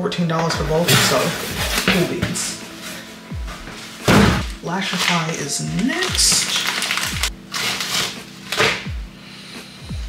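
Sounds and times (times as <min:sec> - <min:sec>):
background music with thudding beat: 0:00.1 - 0:10.0
plastic mailer rustling: 0:00.4 - 0:08.9.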